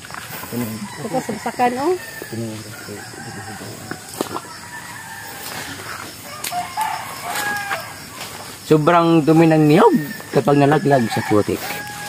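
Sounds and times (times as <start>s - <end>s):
rooster crowing: 0.6s - 8.5s, 9.3s - 12.0s.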